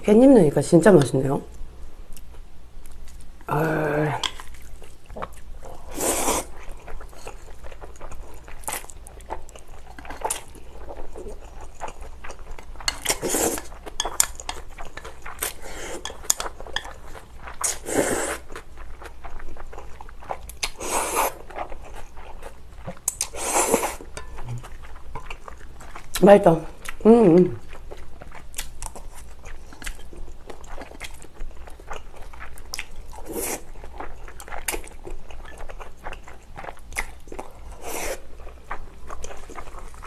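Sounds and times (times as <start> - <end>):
chewing: 4.2 - 40.0.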